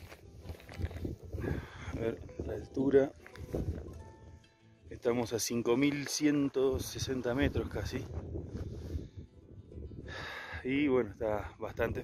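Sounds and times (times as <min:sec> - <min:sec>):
faint background music: 0:00.0 - 0:12.0
wind on microphone: 0:00.7 - 0:02.6, 0:03.4 - 0:04.0, 0:06.7 - 0:10.4.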